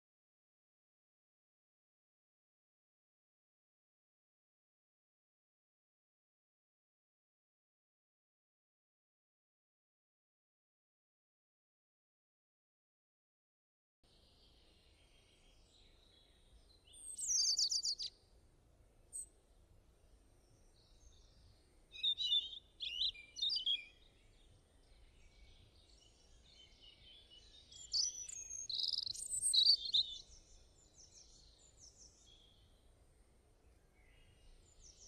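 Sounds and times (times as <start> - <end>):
faint steady hiss: 14.1 - 35.0
birds chirping: 14.2 - 18.1, 20.5 - 32.8.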